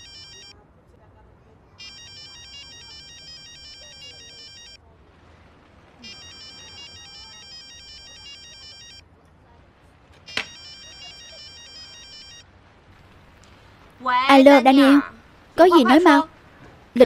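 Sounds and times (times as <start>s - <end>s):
phone ringtone: 0.0s - 0.5s, 1.8s - 4.8s, 6.0s - 9.0s, 10.3s - 12.4s.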